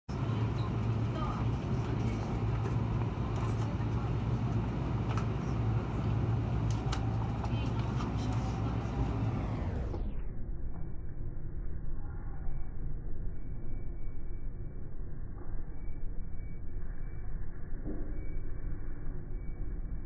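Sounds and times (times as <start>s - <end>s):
train clicks and rattles: 0.1s - 9.2s
train low rumble: 0.1s - 20.0s.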